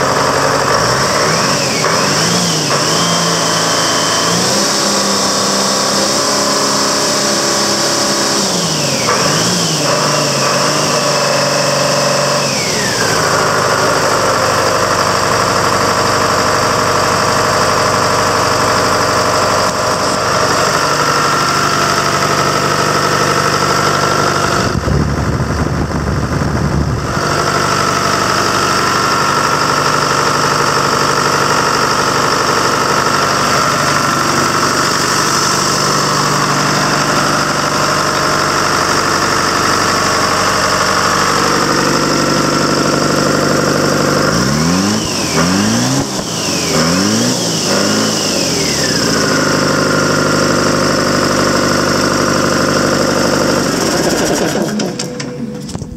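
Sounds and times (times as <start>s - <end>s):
diesel engine idling and revving: 0.0s - 55.9s
high engine whine: 0.0s - 55.9s.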